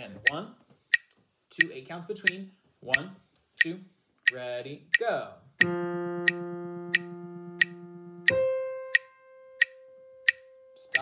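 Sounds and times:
metronome clicking: 3.0s - 11.0s
clarinet playing: 5.7s - 11.0s.

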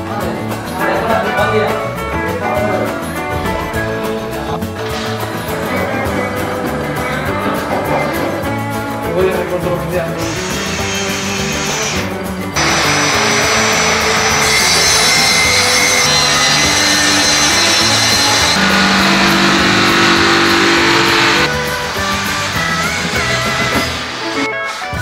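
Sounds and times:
background rock music: 0.0s - 25.0s
power saw cutting board: 10.2s - 25.0s.

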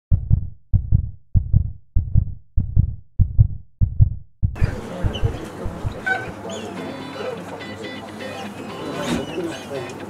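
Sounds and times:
heartbeat double thump: 0.1s - 6.2s.

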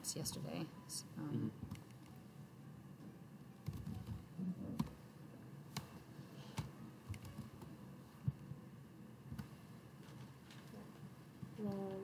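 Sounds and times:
computer keyboard keystrokes: 3.6s - 4.2s.

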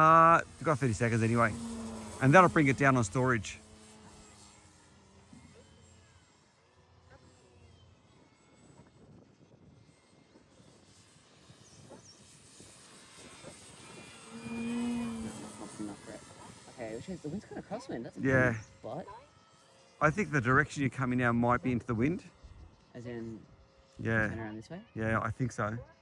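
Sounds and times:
model plane motor humming: 0.0s - 26.0s.

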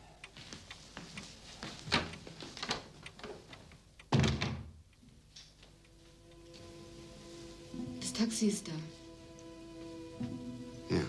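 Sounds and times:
door shutting thud: 4.1s - 4.8s.

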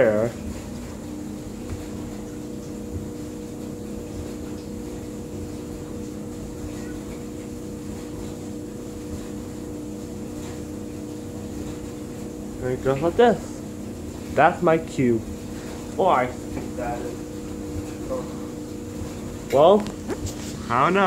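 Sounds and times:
appliance mechanical hum: 0.0s - 21.0s.

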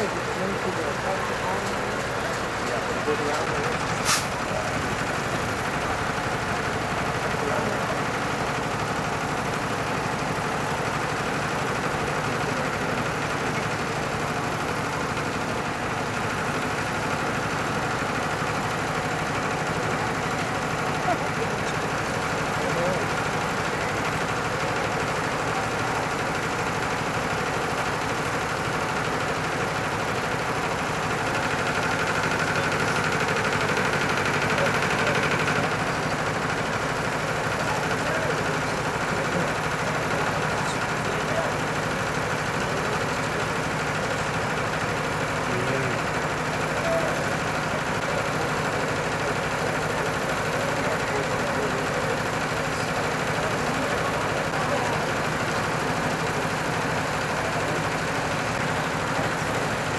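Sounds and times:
construction machinery engines droning: 0.0s - 59.9s
engine whine: 0.0s - 59.9s.

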